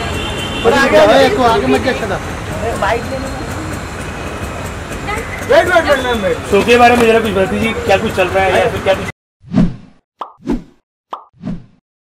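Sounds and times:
cartoon click and pop effects: 10.2s - 11.4s.

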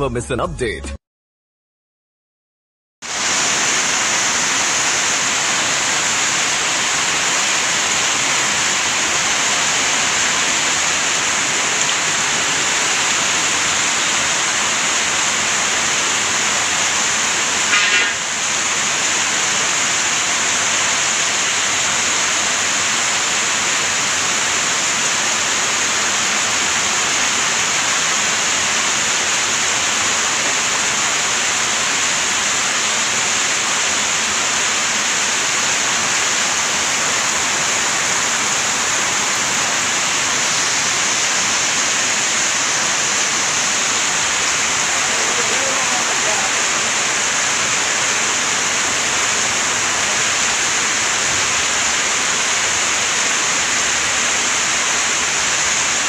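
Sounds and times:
heavy rain pouring: 3.0s - 56.0s
brief loud noise: 17.7s - 18.3s.

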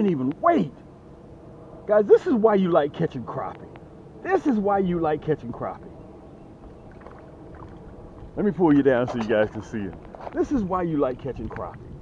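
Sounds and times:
low steady rumble: 0.0s - 12.0s
fish splashing in water: 6.8s - 8.1s.

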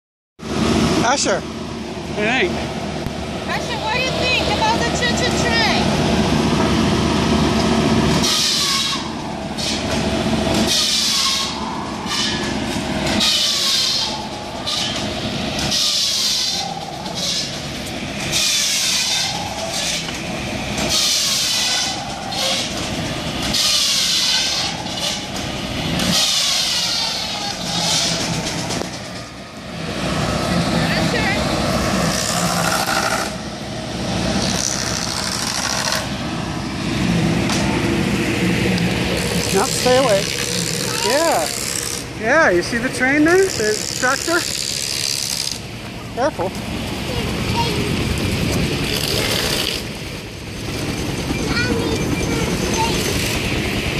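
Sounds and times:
engine running steadily: 0.4s - 53.9s
saw blade whining through wood: 32.0s - 33.4s, 34.4s - 36.2s, 39.1s - 45.6s.

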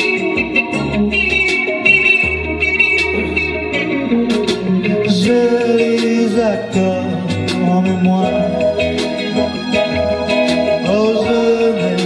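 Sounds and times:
electric guitar: 0.0s - 12.0s
live band instrumental: 0.0s - 12.0s.

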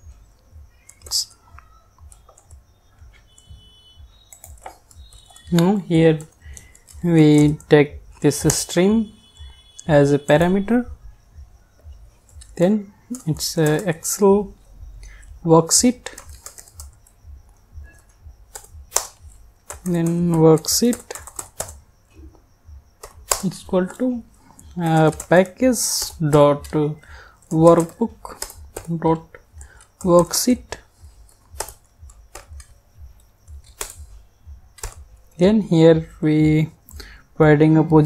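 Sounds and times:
keyboard keystrokes: 4.3s - 8.9s, 12.2s - 14.3s, 15.8s - 17.2s, 17.9s - 21.8s, 23.0s - 34.1s, 34.7s - 35.1s
mouse clicks: 31.3s - 34.1s.

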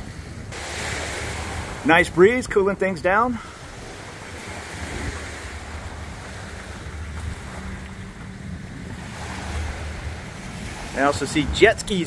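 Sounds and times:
sea waves washing: 0.0s - 12.0s
wind buffeting microphone: 0.0s - 12.0s.

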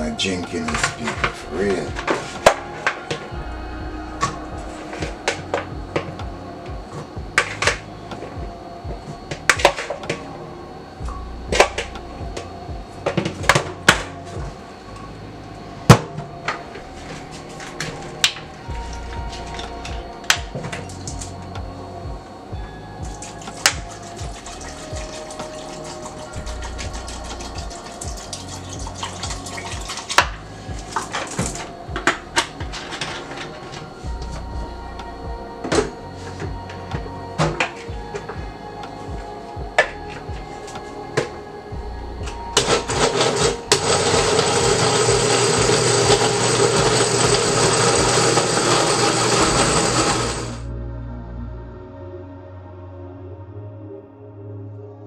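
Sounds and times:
blender running: 42.6s - 50.6s.

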